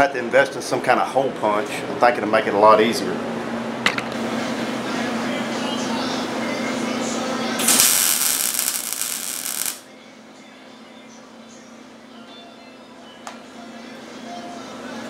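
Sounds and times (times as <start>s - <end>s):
welder hissing: 7.6s - 9.8s.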